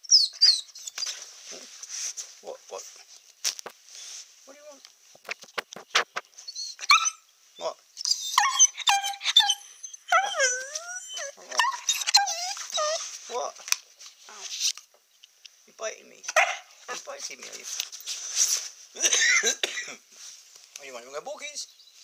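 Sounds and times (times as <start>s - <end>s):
puppy whining and yelping: 0.0s - 1.3s, 5.9s - 7.3s, 8.0s - 13.2s
sharp clicks: 5.2s - 6.3s.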